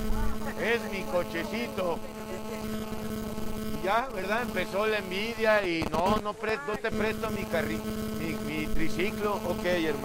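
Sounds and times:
steady electrical hum: 0.0 - 10.0
man's voice: 0.5 - 2.3, 3.8 - 10.0.

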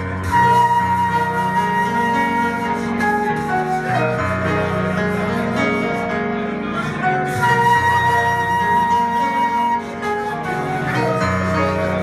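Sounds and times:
flute holding long note: 0.0 - 12.0
live band playing: 0.0 - 12.0.

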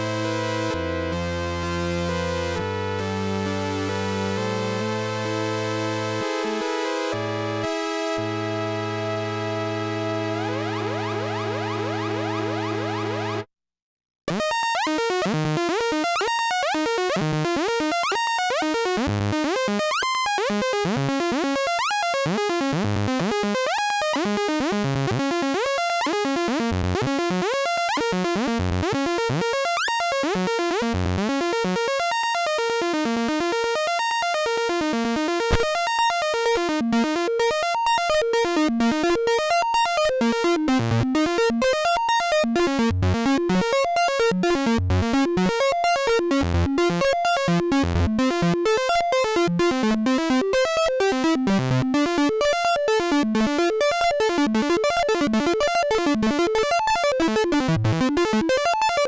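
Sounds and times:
analog synthesizer playing: 0.0 - 13.5, 35.3 - 59.0.

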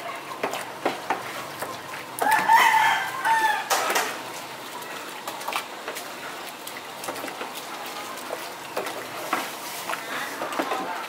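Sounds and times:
rooster crowing: 2.2 - 3.9.

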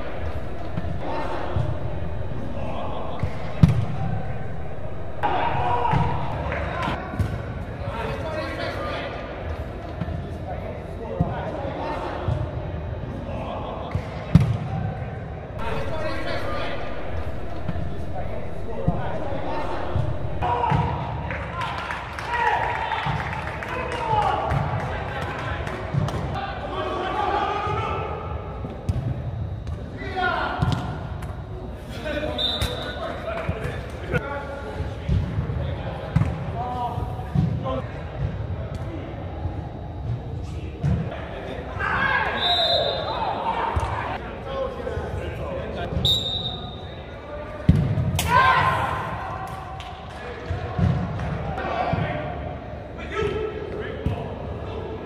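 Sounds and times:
players shouting: 0.0 - 7.1, 15.6 - 28.6, 48.2 - 49.6.

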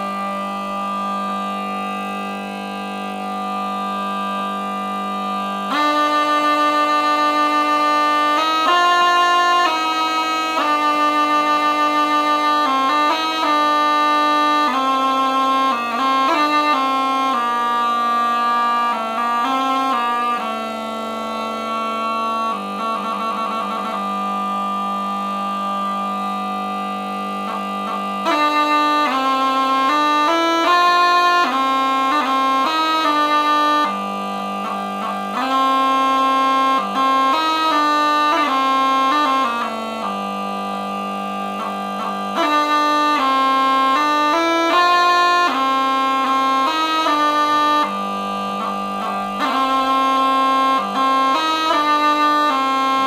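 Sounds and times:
bagpipe drone and held note: 0.0 - 53.0.

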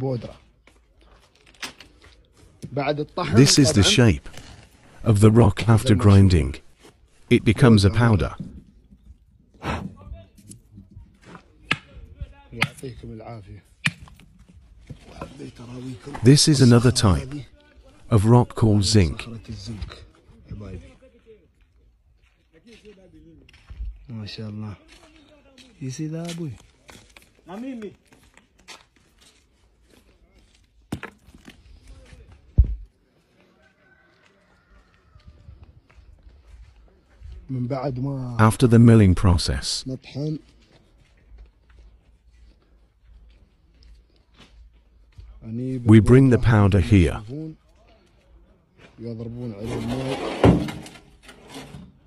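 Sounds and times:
man speaking: 3.0 - 8.5, 15.7 - 19.8, 37.7 - 40.1, 45.6 - 47.6.

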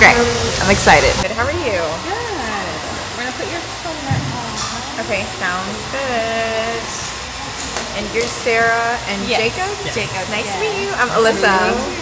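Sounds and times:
faint voices talking: 0.0 - 12.0
hair dryer blowing: 0.0 - 12.0.

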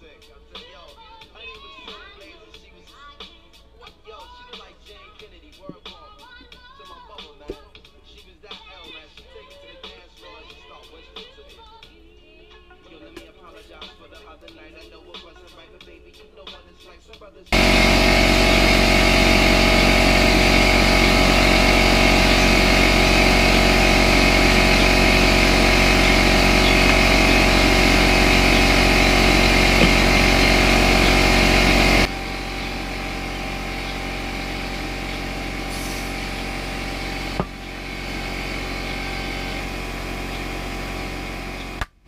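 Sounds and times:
loud steady mechanical hum: 17.5 - 42.0.

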